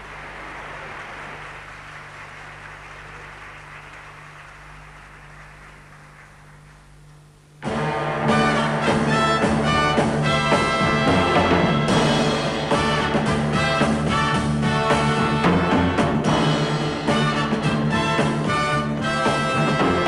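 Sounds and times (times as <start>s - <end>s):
audience applause: 0.0s - 7.0s
orchestra with brass playing: 7.6s - 20.0s.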